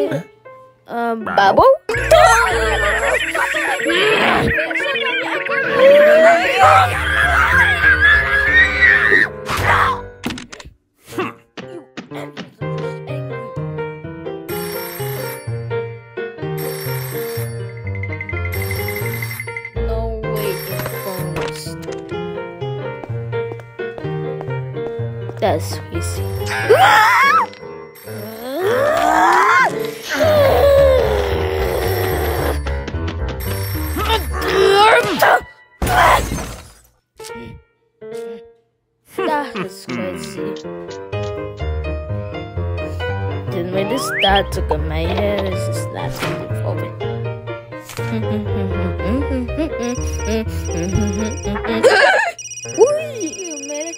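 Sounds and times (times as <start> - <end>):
cartoon background music: 0.0 - 10.3, 11.2 - 23.3, 25.4 - 36.4, 39.2 - 53.9
telephone bell ringing: 1.9 - 6.8, 14.5 - 15.9, 16.6 - 21.6, 27.4 - 28.8, 31.6 - 32.8, 33.4 - 34.6, 50.0 - 53.9
wordless pitch-gliding vocal noises: 1.9 - 8.6.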